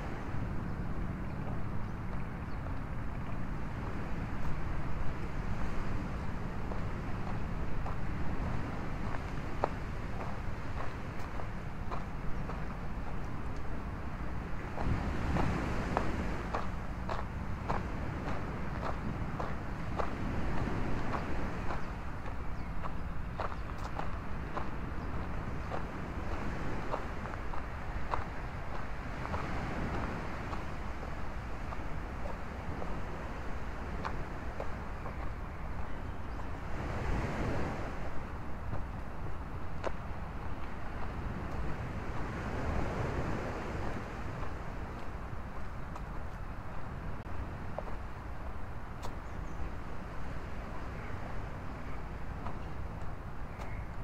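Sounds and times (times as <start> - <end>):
wind rumble on microphone: 0.0 - 54.0
footsteps on sandy dirt path: 0.1 - 51.2, 51.8 - 54.0.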